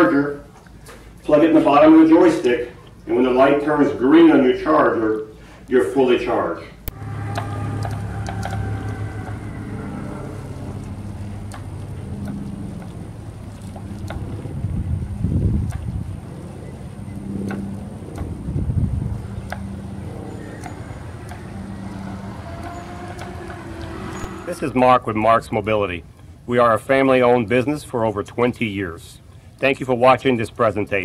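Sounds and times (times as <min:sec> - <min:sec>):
power chair motors humming: 0:06.9 - 0:24.7
wind gusts on microphone: 0:06.9 - 0:25.1.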